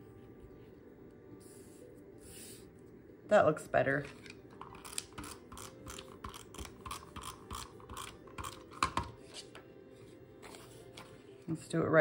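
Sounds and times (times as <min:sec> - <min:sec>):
paper shuffling: 0:09.2 - 0:11.4.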